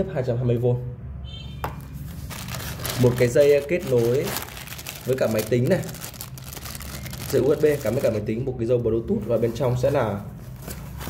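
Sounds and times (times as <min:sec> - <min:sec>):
plastic bag crinkling: 0:02.1 - 0:08.3.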